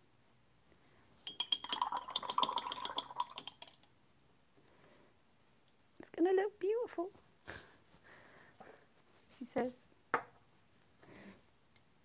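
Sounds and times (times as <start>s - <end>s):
brush clinking in water jar: 1.2s - 3.8s.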